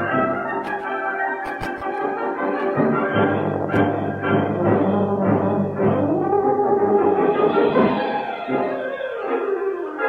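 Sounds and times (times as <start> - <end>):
euphonium solo: 0.0 - 10.0
wind band playing: 0.0 - 10.0.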